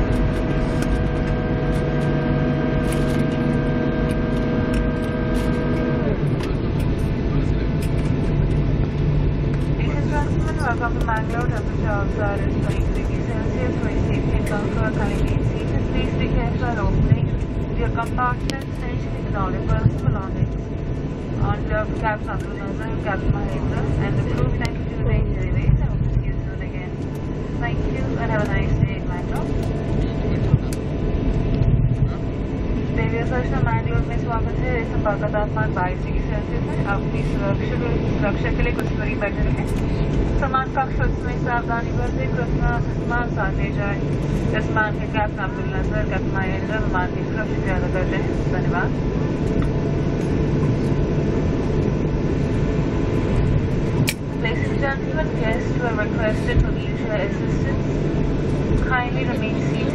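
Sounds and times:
airliner cabin rumble: 0.0 - 59.9
faint steady hums: 0.0 - 59.9
people talking: 9.8 - 20.5, 21.4 - 27.0, 27.6 - 30.8, 33.0 - 39.8, 40.4 - 48.9, 54.4 - 57.8, 58.8 - 59.9.

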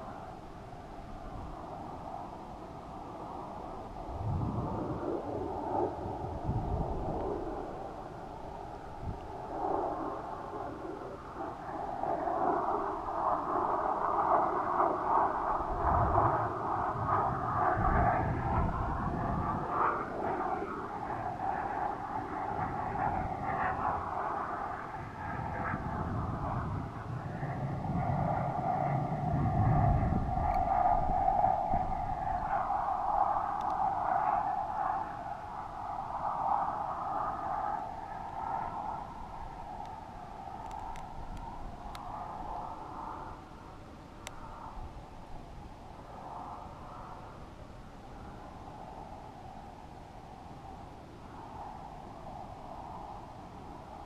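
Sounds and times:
low rumbling gusts: 0.0 - 54.0
wind whistling over camera: 0.0 - 54.0.

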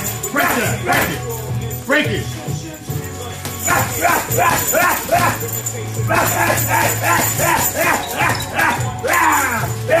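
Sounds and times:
background music: 0.0 - 10.0
man shouting: 0.3 - 1.2, 3.6 - 10.0.

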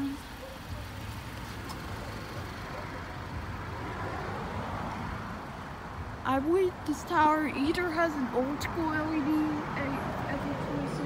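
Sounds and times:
low traffic rumble: 0.0 - 11.0
vehicle passing by: 0.3 - 6.2.

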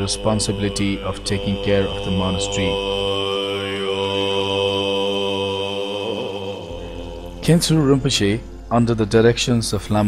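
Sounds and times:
voice chanting long note: 0.0 - 8.9.

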